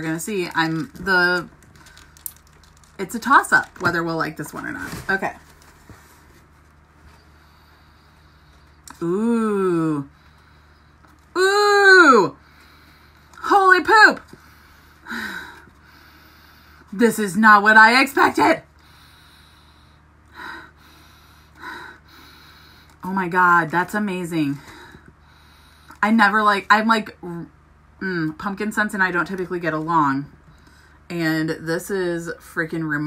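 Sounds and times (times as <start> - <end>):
low electrical hum: 0.0 - 33.0.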